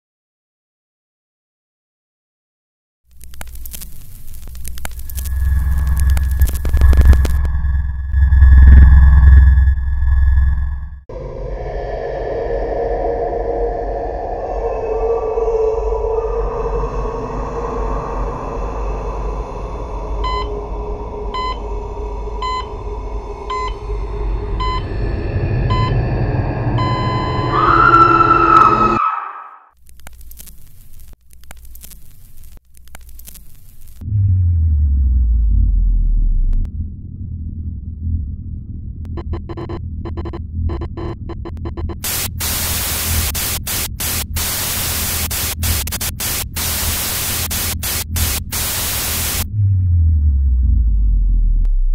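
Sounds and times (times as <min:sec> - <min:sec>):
loud static hiss: 0:03.1 - 0:07.5, 0:30.0 - 0:34.0, 0:42.0 - 0:49.5
low rumbling drone: 0:04.4 - 0:29.7, 0:34.0 - 0:51.9
higher electronic tone: 0:04.9 - 0:11.1, 0:20.0 - 0:29.6
electronic beep: 0:21.4 - 0:21.6, 0:23.5 - 0:23.8, 0:24.6 - 0:24.9, 0:25.7 - 0:26.0, 0:26.7 - 0:29.6, 0:39.1 - 0:42.0.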